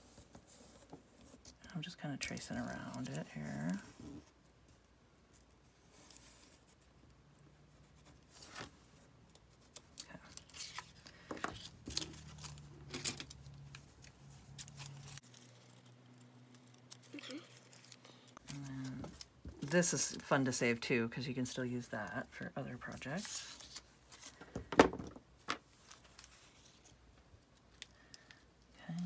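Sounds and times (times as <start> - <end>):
paper rustling: 8.0 - 20.4, 22.8 - 28.3.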